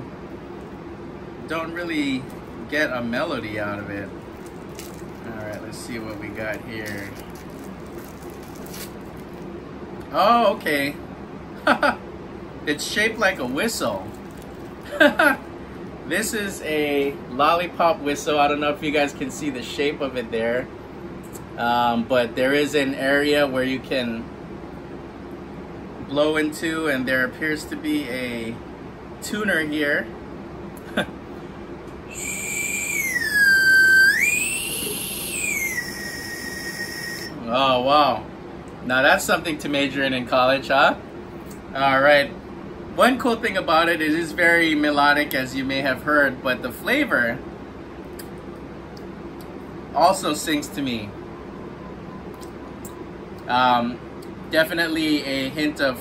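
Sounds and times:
plastic wrapper crinkling: 0:04.2 - 0:09.5, 0:13.4 - 0:14.9
lollipop whistle blown: 0:32.1 - 0:37.4.

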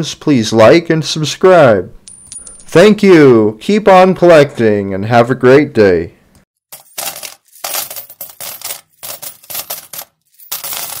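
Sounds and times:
coins clinking together: 0:02.1 - 0:02.7, 0:06.7 - 0:11.0.

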